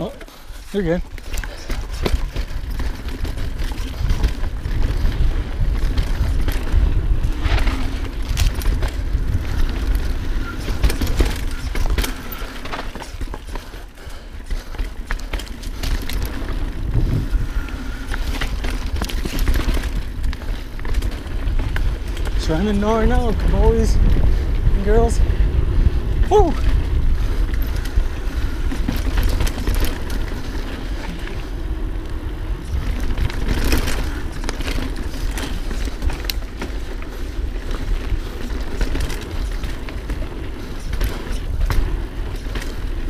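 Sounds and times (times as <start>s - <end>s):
bike rattling and clacking: 0.0s - 43.0s
bike tyres on dirt: 0.0s - 43.0s
wind rumble on microphone: 1.1s - 43.0s.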